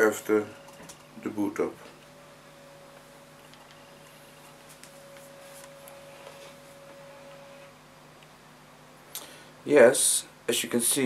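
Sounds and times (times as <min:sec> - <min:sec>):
faint laptop whine: 0:00.0 - 0:11.0.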